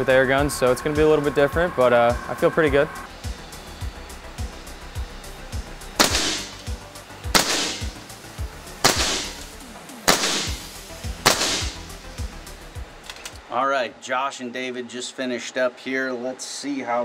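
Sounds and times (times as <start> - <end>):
background music with low beat: 0.0 - 13.5
air rifle shots: 6.0 - 6.7, 7.3 - 8.1, 8.8 - 12.0.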